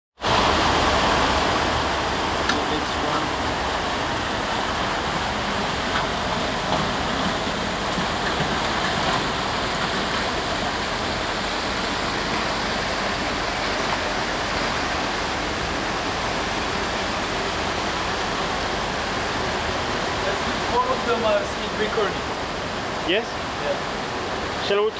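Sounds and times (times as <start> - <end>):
water rushing through a flume: 0.2 - 24.9.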